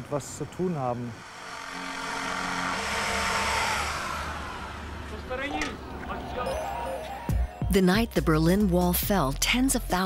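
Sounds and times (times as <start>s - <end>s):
vehicle passing by: 0.2s - 6.9s.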